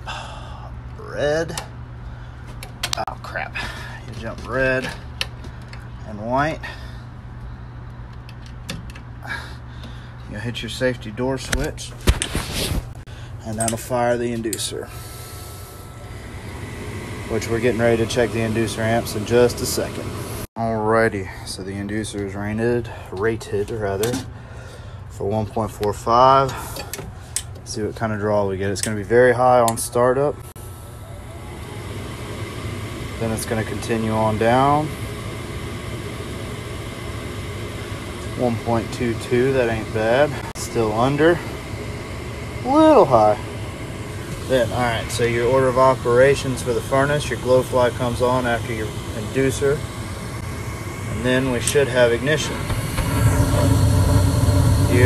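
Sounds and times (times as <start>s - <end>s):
steady low machine hum: 0.0s - 55.0s.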